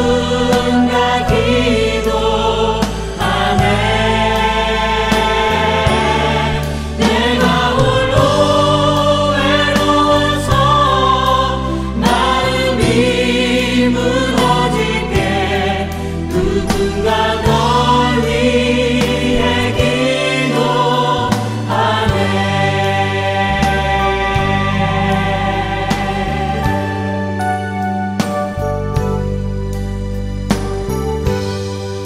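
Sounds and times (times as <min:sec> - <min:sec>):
choir singing held notes: 0:00.0 - 0:27.2
instrumental accompaniment: 0:00.0 - 0:32.0.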